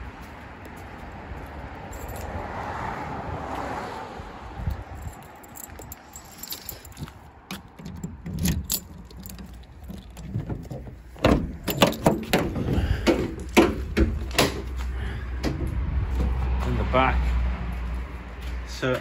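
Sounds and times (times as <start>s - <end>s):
key and lock rattles: 1.9s - 2.3s, 4.7s - 12.8s
lock and latch clicks: 7.5s - 10.3s
van doors swinging open: 7.5s - 14.7s.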